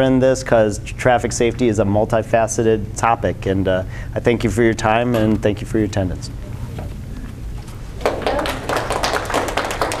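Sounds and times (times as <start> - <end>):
audience applauding: 8.0 - 10.0.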